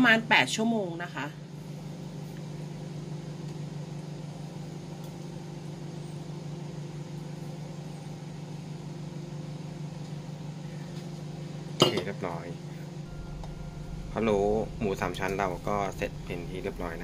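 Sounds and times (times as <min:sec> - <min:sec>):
electrical hum with buzz: 0:00.0 - 0:17.0.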